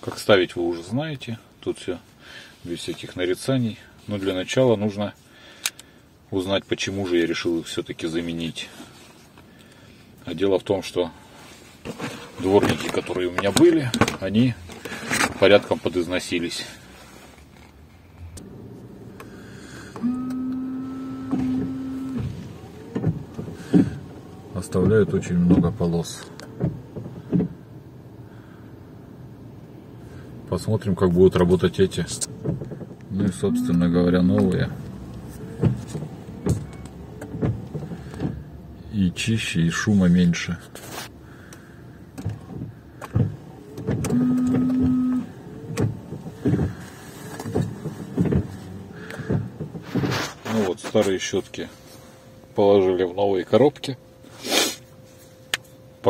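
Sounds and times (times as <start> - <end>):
wiper motor whine: 18.2 - 25.7, 32.1 - 38.4, 43.0 - 54.3
electric motor hum: 18.4 - 22.4.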